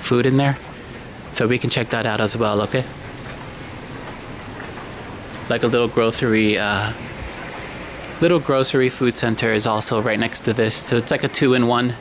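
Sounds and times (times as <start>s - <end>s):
shop interior background noise: 0.0s - 12.0s.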